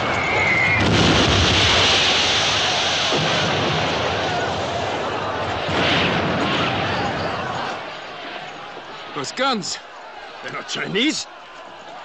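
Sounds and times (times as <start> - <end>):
artillery shell explosion: 0.2 - 8.0.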